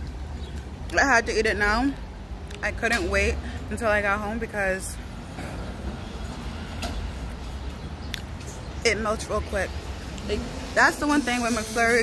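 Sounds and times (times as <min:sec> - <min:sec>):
faint street background: 0:00.0 - 0:12.0.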